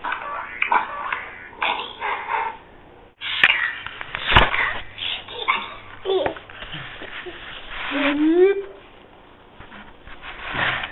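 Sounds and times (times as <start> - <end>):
short recorded sounds from laptop: 0.0 - 8.8.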